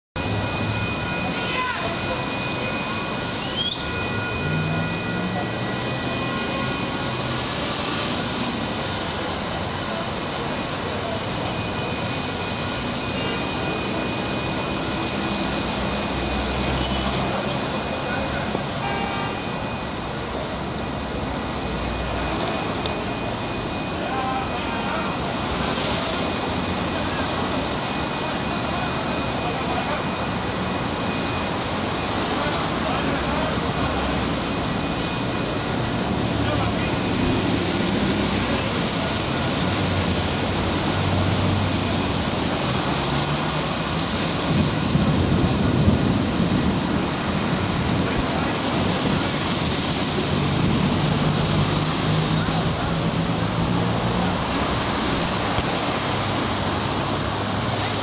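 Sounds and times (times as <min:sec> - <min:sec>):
road traffic: 0:00.1 - 0:58.0
crowd chatter: 0:00.2 - 0:58.0.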